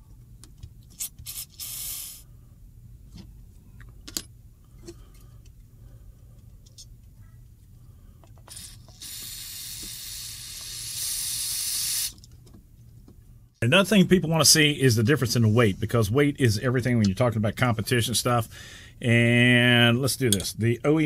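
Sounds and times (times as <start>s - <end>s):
aerosol spray hiss: 1.3s - 2.2s, 9.0s - 12.1s.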